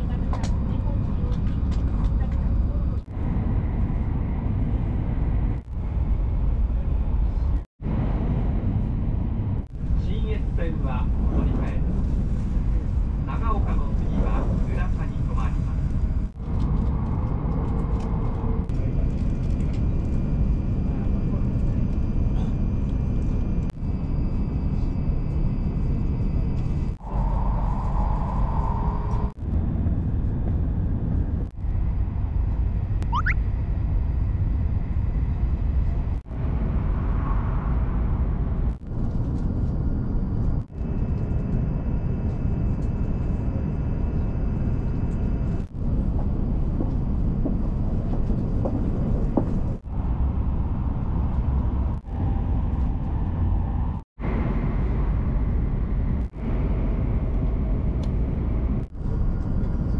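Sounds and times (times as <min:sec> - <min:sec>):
train running noise: 0:00.0 - 0:59.9
rising whistle-like tone: 0:33.0 - 0:33.4.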